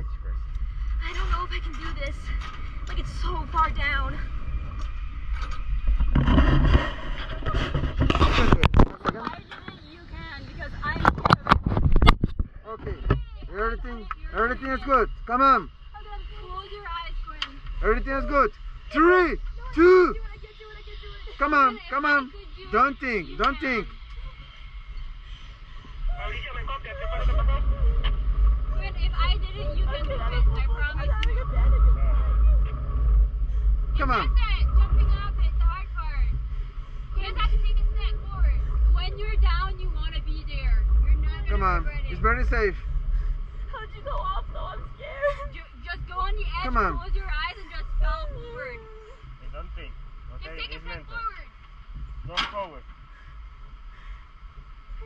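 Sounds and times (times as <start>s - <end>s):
wind rumble on microphone: 0.0s - 55.0s
muffled voices: 6.2s - 24.7s
thin steady whistle: 13.9s - 26.2s.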